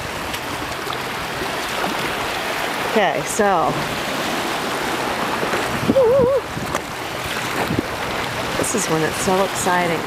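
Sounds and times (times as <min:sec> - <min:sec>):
shallow seawater sloshing: 0:00.0 - 0:10.0.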